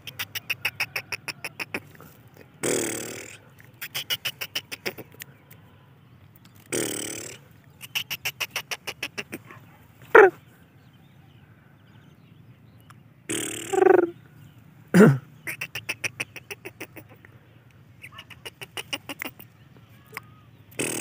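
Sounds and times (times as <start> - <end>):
bird chick rapid ticking calls: 0.0 - 5.6, 6.3 - 9.5, 15.4 - 21.0
harsh rasping bird call: 0.0 - 6.0, 6.6 - 10.4, 13.3 - 14.2, 15.0 - 21.0.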